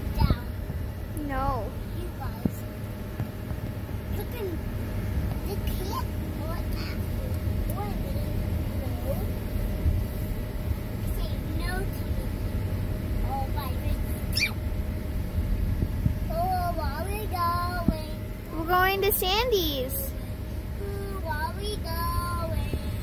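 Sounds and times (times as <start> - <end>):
car cabin road rumble: 0.0 - 23.0
child's sing-song voice: 16.3 - 20.1, 20.8 - 23.0.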